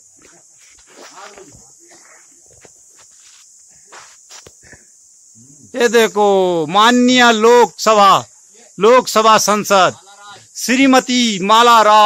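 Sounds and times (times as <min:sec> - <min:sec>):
soft footsteps and scuffs: 0:00.0 - 0:04.6
steady high hiss: 0:00.0 - 0:12.0.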